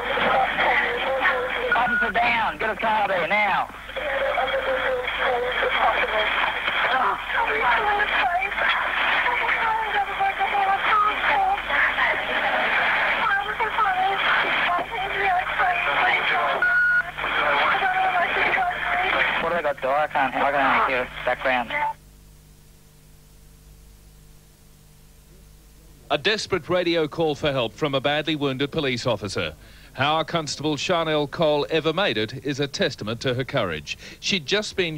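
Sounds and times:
voices over crackly radio: 0.0s - 22.0s.

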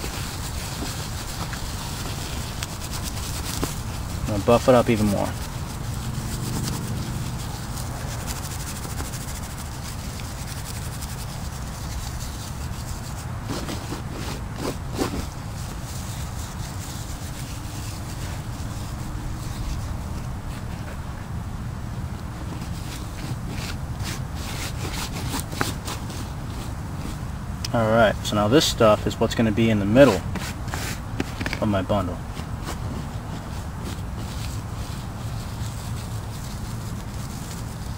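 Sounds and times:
crisp crackles: 0.0s - 13.7s
steady low rumble: 0.0s - 25.2s
dry grass rustling between hands: 0.0s - 28.4s, 30.0s - 37.9s.

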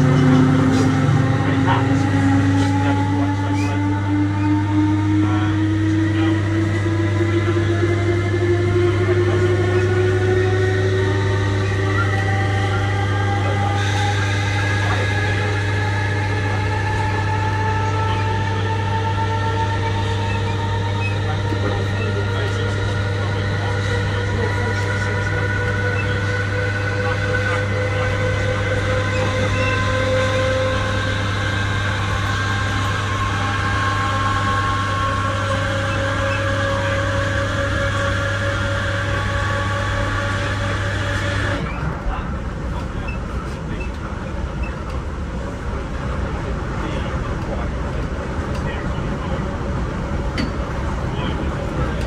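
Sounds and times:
low hum: 0.0s - 52.0s
rail running noise: 0.0s - 52.0s
train traction motors whining: 0.0s - 52.0s.

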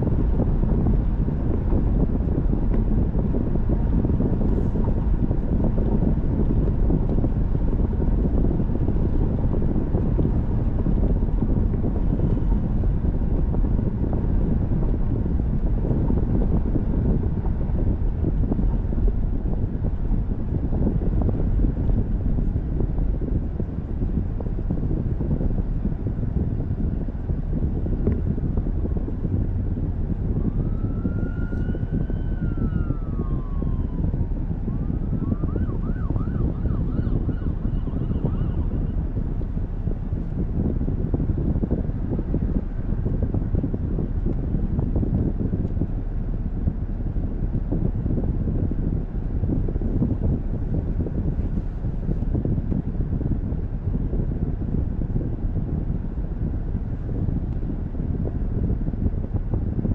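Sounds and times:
road and wind rumble in car: 0.0s - 59.9s
distant emergency siren: 30.4s - 38.8s.

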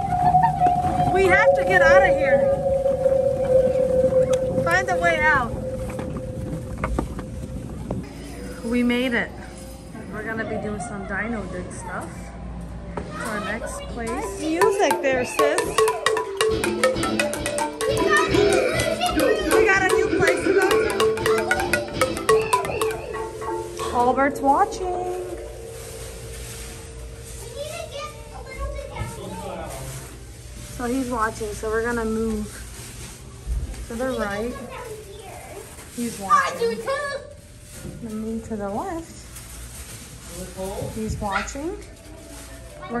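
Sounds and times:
chatter of children and adults: 8.0s - 16.3s, 27.3s - 31.3s, 33.5s - 43.0s.

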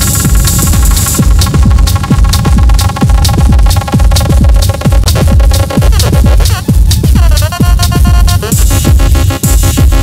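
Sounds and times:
techno music: 0.0s - 10.0s.

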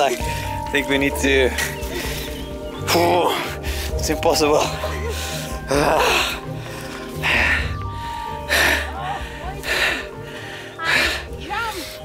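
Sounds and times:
person breathing hard: 5.0s - 12.0s.

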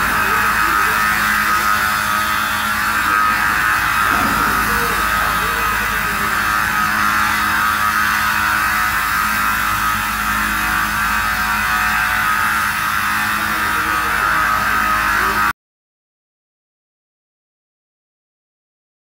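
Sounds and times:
woodworking machine drone: 0.0s - 15.6s.

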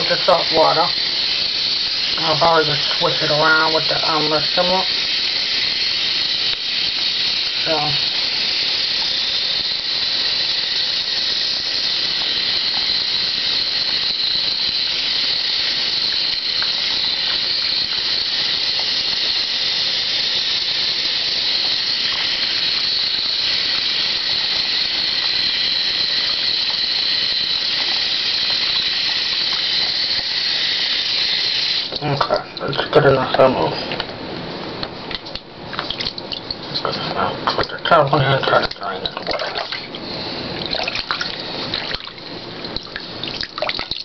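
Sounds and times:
faucet running into sink: 0.0s - 34.1s, 35.1s - 44.0s.

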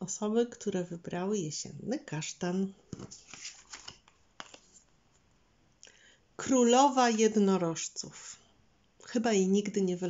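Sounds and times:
cards sliding on table: 2.9s - 4.8s
paper rustles: 2.9s - 4.9s.

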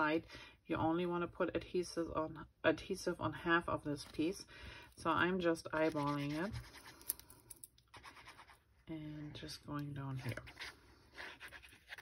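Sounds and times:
glue pen scratching on cardstock: 5.8s - 7.0s.

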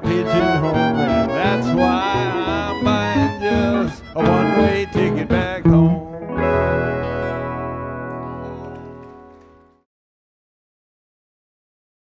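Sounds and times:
western swing band playing: 0.0s - 9.7s.

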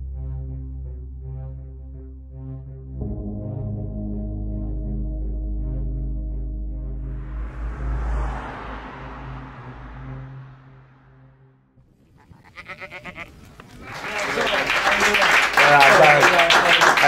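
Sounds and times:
ambient music with low drone: 0.0s - 11.6s
audience voices: 13.6s - 17.0s
audience applause: 13.7s - 17.0s.

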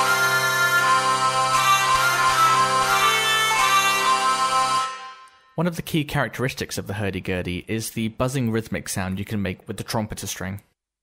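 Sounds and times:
hurdy-gurdy drone and melody: 0.0s - 5.3s.

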